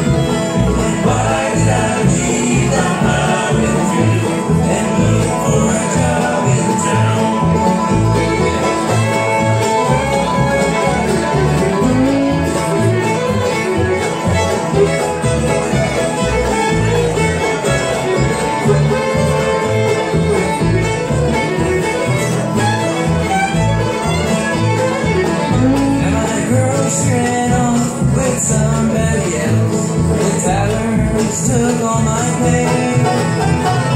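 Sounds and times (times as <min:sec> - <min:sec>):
acoustic guitars: 0:00.0 - 0:33.9
banjo: 0:00.0 - 0:33.9
fiddle: 0:00.0 - 0:33.9
upright bass: 0:00.0 - 0:33.9.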